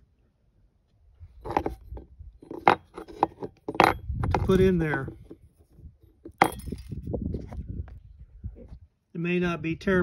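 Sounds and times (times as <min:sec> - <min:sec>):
metal bracket clinking on plastic: 0:01.4 - 0:04.6, 0:06.2 - 0:07.0.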